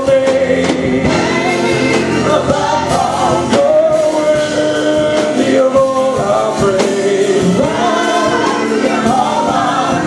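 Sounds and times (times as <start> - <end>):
electric keyboard accompaniment: 0.0 - 10.0
gospel group singing in harmony: 0.0 - 10.0.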